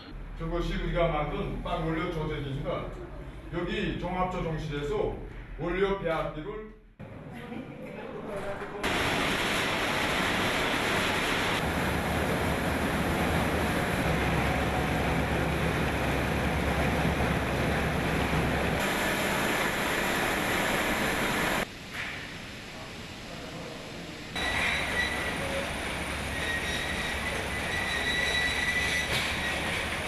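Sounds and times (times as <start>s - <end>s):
factory machinery running: 8.8s - 30.0s.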